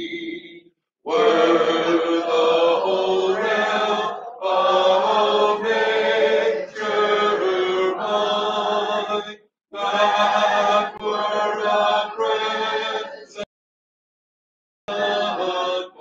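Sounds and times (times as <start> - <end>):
congregation singing a hymn: 1.1 - 13.5, 14.9 - 16.0.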